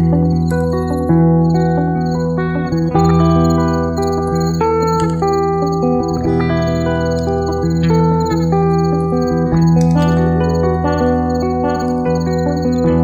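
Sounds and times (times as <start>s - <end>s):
ringing guitar notes: 0.0s - 13.0s
steady low drone: 0.0s - 13.0s.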